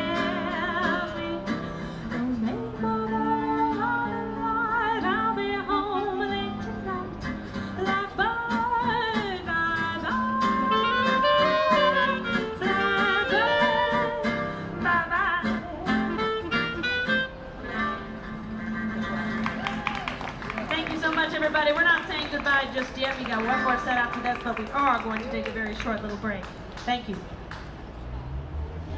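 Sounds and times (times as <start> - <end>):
woman singing into a microphone: 0.0 - 11.8, 12.6 - 16.2
acoustic guitar: 0.0 - 20.1
clarinet: 10.0 - 18.2.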